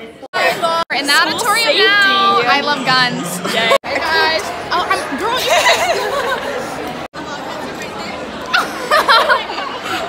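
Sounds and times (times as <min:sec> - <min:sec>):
young people chattering: 0:00.0 - 0:10.0.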